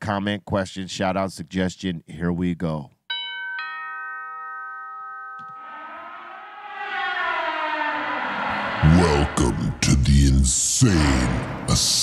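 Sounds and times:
two-note doorbell chime: 3.1 - 6.5
rushing noise: 5.6 - 10.5.

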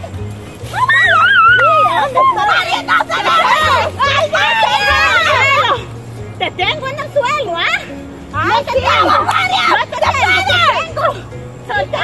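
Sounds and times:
women shouting and crying: 0.0 - 12.0.

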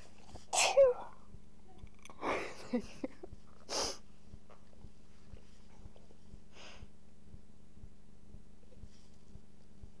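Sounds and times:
person sneezing: 0.5 - 1.1.

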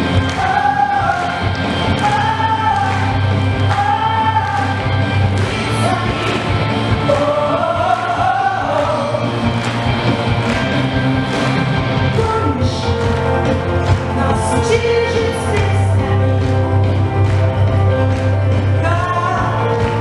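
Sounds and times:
amplified music with bass and beat: 0.0 - 20.0
woman singing into a microphone: 3.7 - 4.8, 5.4 - 6.5.

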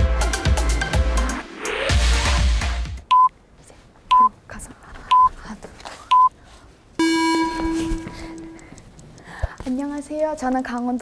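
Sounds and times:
electronic background music: 0.0 - 3.1
low buzzing tone: 7.0 - 8.7
short high beeps: 7.0 - 8.7.

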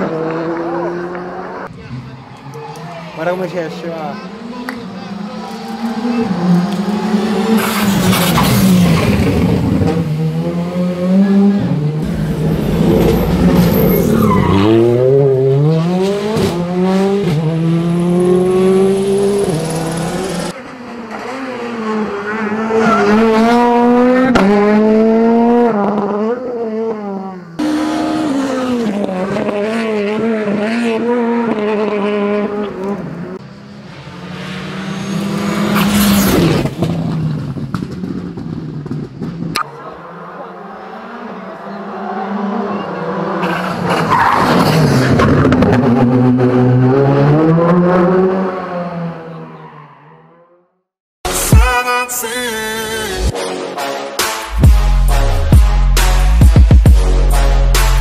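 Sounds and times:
rally car engines revving past: 0.0 - 50.6.

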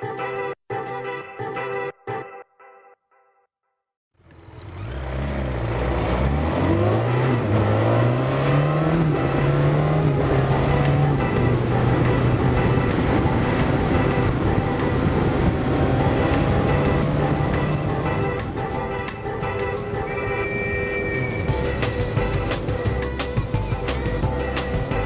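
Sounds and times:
motorcycle engine accelerating: 4.2 - 25.0.

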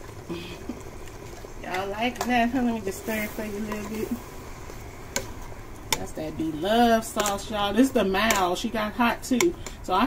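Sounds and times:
sauce bubbling with fizzing hiss: 0.0 - 9.9.

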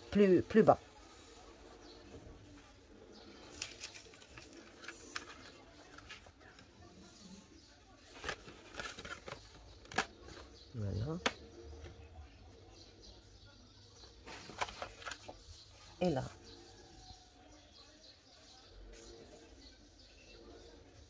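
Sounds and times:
paper rustling: 3.3 - 6.8, 7.9 - 10.6, 14.2 - 15.4.

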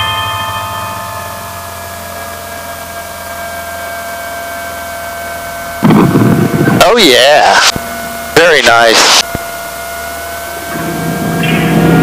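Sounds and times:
aircraft engine drone: 0.0 - 12.0
sustained ringing tones: 0.0 - 12.0
loud rush of noise: 5.8 - 12.0.

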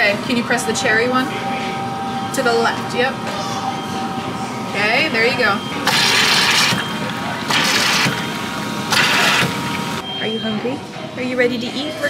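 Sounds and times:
soda pouring into paper cup: 7.5 - 8.2.

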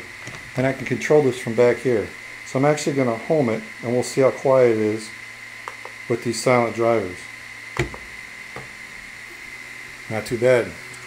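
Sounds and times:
cooling fans hissing: 0.0 - 11.0
faint high whine: 0.0 - 11.0.

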